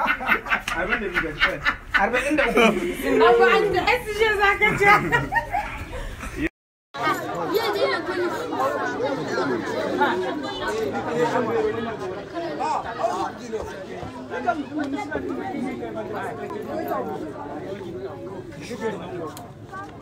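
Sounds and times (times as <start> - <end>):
people chattering: 0.0 - 20.0.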